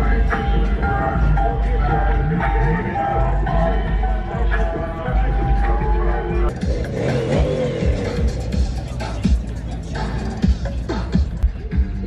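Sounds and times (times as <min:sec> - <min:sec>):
music: 0:00.0 - 0:12.0
truck engine revving: 0:02.4 - 0:11.4.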